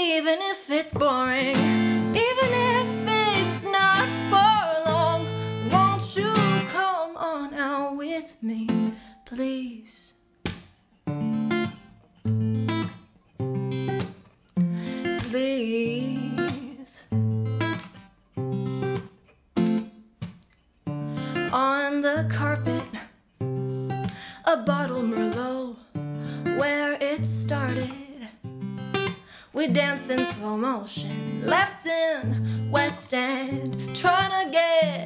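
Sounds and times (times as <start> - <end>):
woman singing: 0.0 - 10.2, 14.9 - 17.2, 21.2 - 23.1, 24.0 - 35.0
acoustic guitar strummed chords: 0.9 - 7.0, 20.9 - 35.0.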